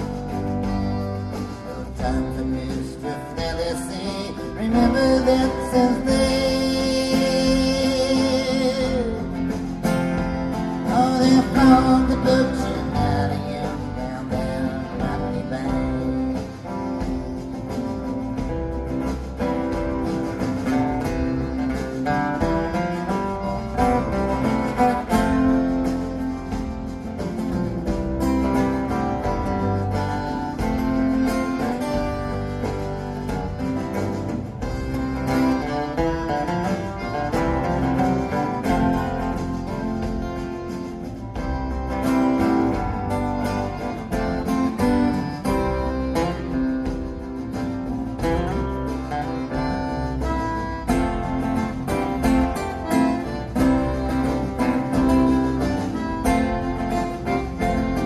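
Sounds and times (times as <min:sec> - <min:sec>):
acoustic guitar strumming and picking: 0:00.0 - 0:58.0
upright double bass: 0:00.0 - 0:58.0.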